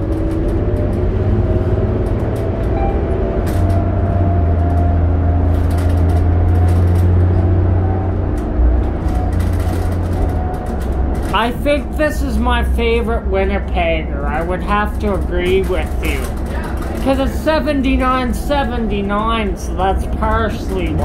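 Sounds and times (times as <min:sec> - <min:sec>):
bus engine drone: 0:00.0 - 0:21.0.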